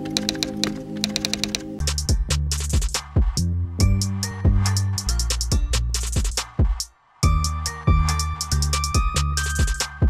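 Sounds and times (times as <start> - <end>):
keyboard typing clicks: 0.0 - 1.7
drum beat: 2.7 - 3.4, 6.2 - 6.9.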